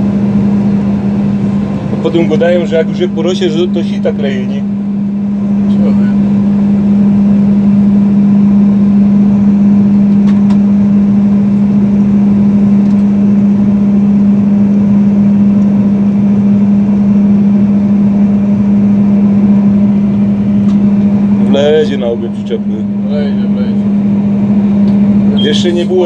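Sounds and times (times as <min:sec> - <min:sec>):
combine harvester drone: 0:00.0 - 0:26.0.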